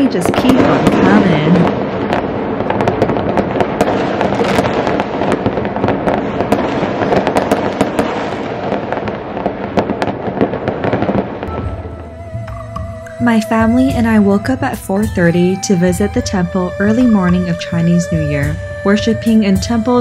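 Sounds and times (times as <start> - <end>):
fireworks crackling and popping: 0.0 - 12.2, 12.8 - 20.0.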